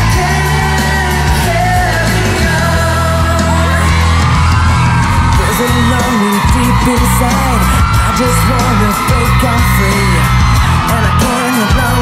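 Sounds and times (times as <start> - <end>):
fans yelling and screaming: 0.0 - 12.0
live pop song through loudspeakers: 0.0 - 12.0
male singer: 0.0 - 12.0.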